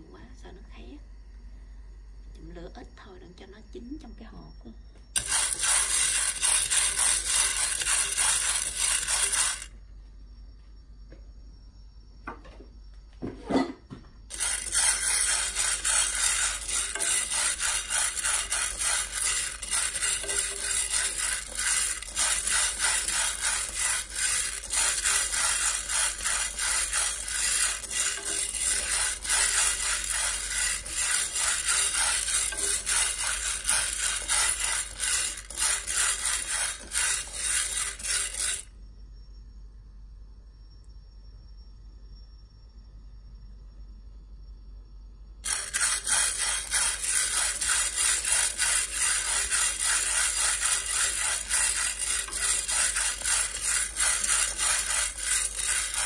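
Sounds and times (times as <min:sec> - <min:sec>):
beans rattling in a pan: 0:05.2 - 0:09.7, 0:14.3 - 0:38.7, 0:45.4 - 0:56.0.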